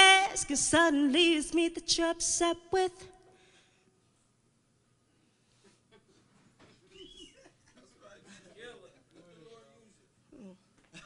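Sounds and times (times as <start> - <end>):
faint indistinct vocal sounds: 10.3 - 10.8.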